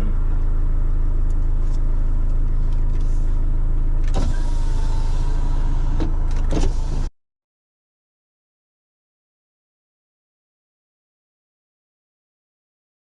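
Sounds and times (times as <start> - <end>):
car engine idling: 0.0 - 7.1.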